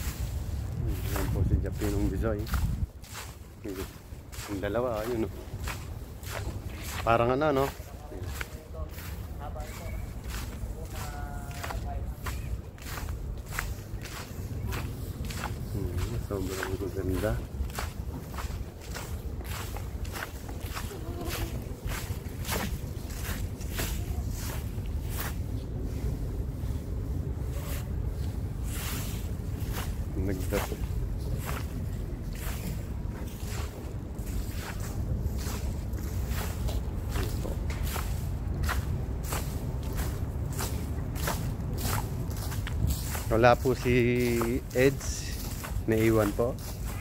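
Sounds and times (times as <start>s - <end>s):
footsteps: 0.0s - 47.0s
steady low rumble: 0.0s - 47.0s.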